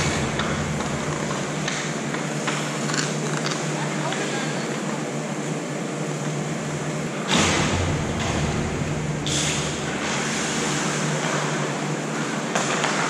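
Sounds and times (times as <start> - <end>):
deep rumble: 0.0 - 2.3, 6.4 - 11.1
noisy hiss: 0.0 - 2.9, 5.5 - 13.0
ventilation hum: 0.0 - 13.0.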